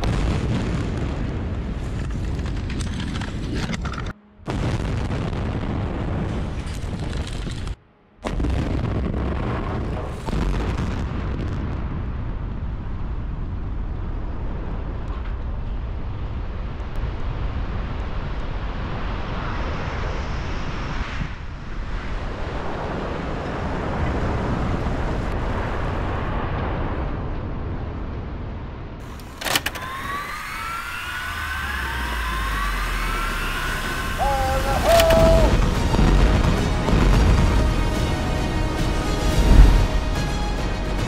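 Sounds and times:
deep rumble of towers collapsing: 0.0s - 20.6s, 21.5s - 41.0s.

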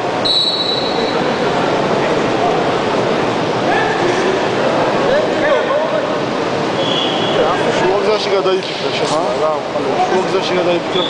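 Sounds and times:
crowd murmur: 0.0s - 11.0s
referee's whistle blast: 0.2s - 1.2s, 6.8s - 7.4s.

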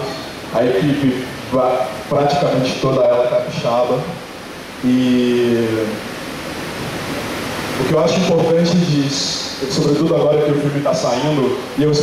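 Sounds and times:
man speaking: 0.0s - 4.2s, 4.8s - 6.0s, 7.8s - 12.0s
steady hiss: 0.0s - 12.0s.

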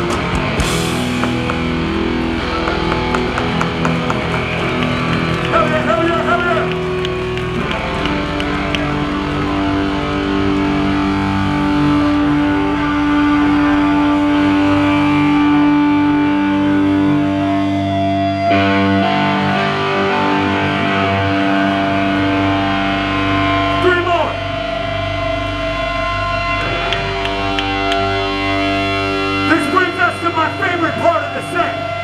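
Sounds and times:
distorted electric guitars and bass: 0.0s - 32.0s.

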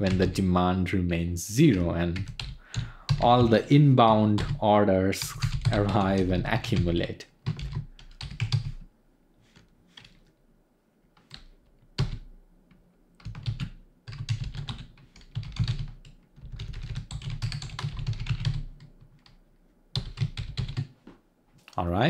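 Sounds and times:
typing on computer keyboard: 2.2s - 3.5s, 5.2s - 8.8s, 11.2s - 12.3s, 13.2s - 20.9s.

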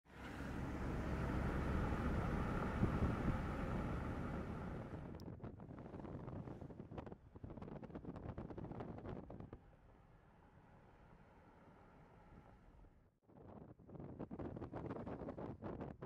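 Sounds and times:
car wind and road noise: 0.0s - 13.0s.

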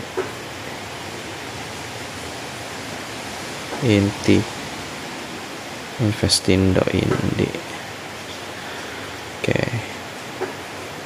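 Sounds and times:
steady background hiss: 0.0s - 11.0s
person speaking: 3.8s - 4.5s, 6.0s - 7.8s, 9.4s - 10.0s.

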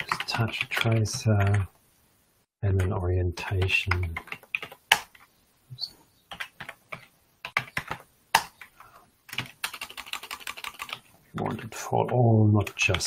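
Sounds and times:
computer keyboard typing: 0.0s - 1.6s, 2.8s - 5.3s, 6.3s - 13.0s.

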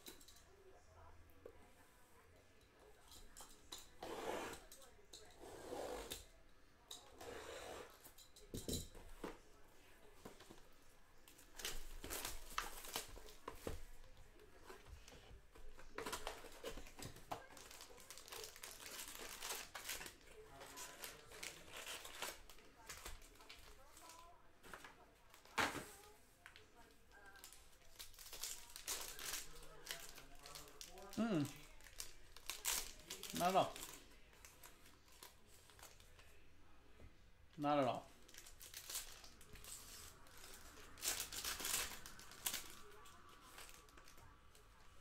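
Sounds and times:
foil wrappers crinkling: 11.3s - 13.8s, 15.6s - 24.2s, 27.2s - 36.3s, 38.2s - 44.6s.

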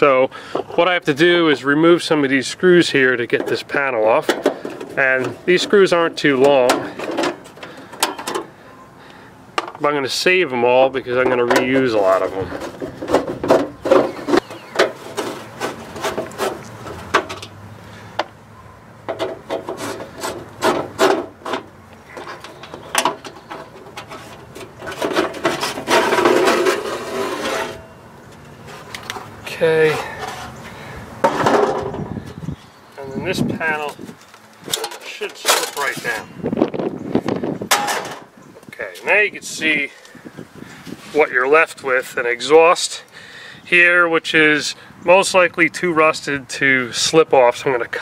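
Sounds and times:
metal scraping and squeaking: 2.0s - 8.9s, 10.1s - 18.0s, 18.6s - 36.4s.

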